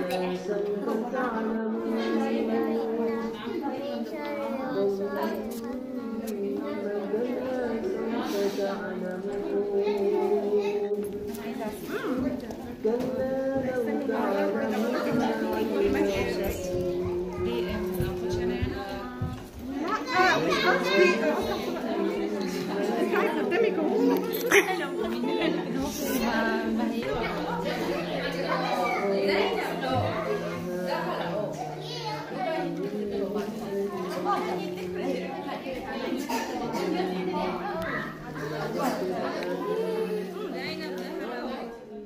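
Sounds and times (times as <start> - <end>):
women chatting: 0.0 - 42.0.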